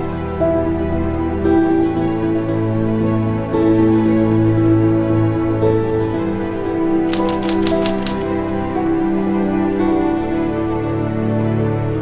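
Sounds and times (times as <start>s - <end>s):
sharp typewriter-like clicks: 7.1s - 8.2s.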